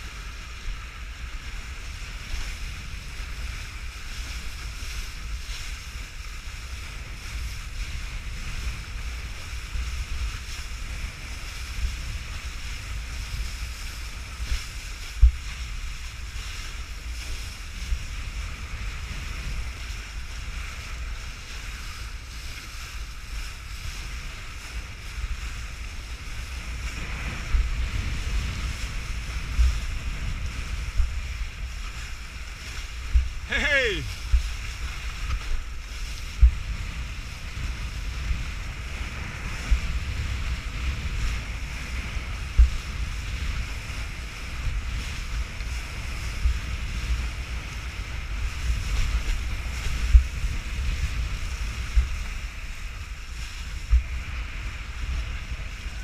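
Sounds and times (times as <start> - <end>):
water hissing under kiteboard: 0.0 - 56.0
wind rushing over microphone: 0.0 - 56.0.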